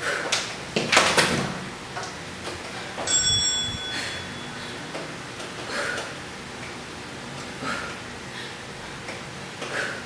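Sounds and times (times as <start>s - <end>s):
bell chime: 3.1s - 4.9s.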